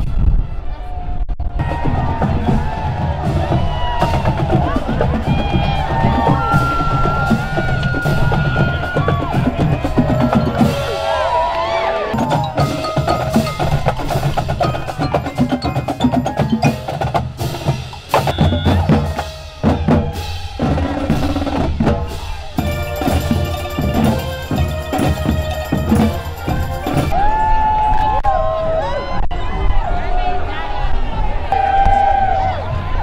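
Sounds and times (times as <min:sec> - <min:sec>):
bass drum: 0:01.4 - 0:11.2, 0:12.2 - 0:27.2
brass melody: 0:12.1 - 0:27.1
snare drum: 0:12.2 - 0:27.1.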